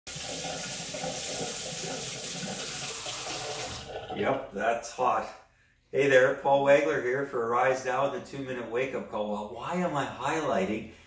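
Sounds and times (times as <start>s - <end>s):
faucet running into sink: 0.1s - 4.2s.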